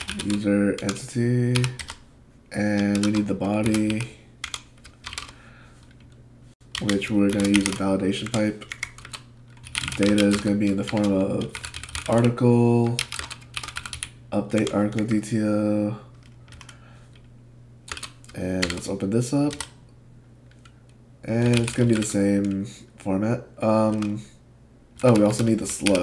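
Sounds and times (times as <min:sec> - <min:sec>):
computer keyboard typing: 0:00.0 - 0:02.0, 0:02.6 - 0:15.2, 0:16.1 - 0:16.8, 0:17.9 - 0:18.9, 0:19.5 - 0:19.8, 0:20.5 - 0:22.6, 0:23.8 - 0:24.2, 0:25.0 - 0:26.0
low steady hum: 0:00.0 - 0:26.0.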